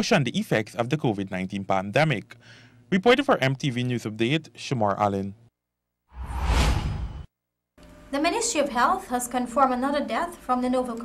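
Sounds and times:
whoosh transition effect: 0:06.2 - 0:07.3.

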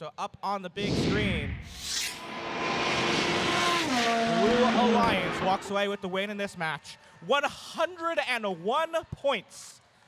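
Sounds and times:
race car passing at speed: 0:02.0 - 0:05.7.

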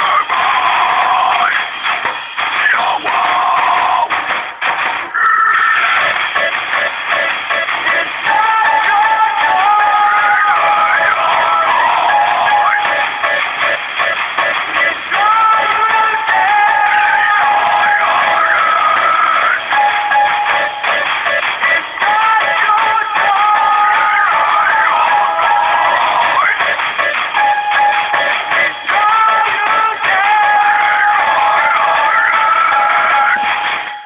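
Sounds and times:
rock music: 0:00.0 - 0:34.0.

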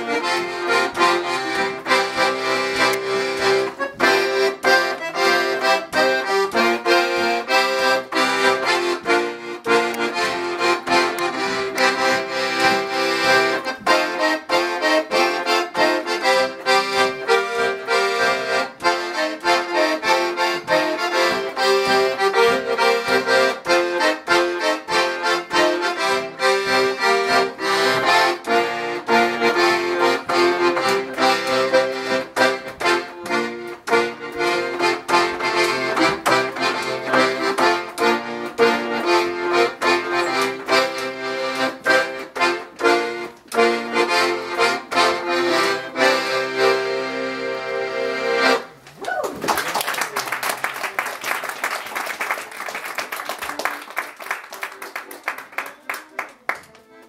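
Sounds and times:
accordion playing lively tune: 0:00.0 - 0:48.8, 0:50.8 - 0:57.0.

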